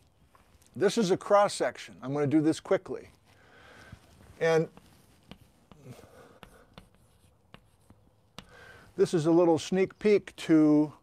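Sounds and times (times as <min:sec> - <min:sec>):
chalk scratching on chalkboard: 0:04.4 - 0:09.1
chalk tapping on board: 0:04.6 - 0:08.7.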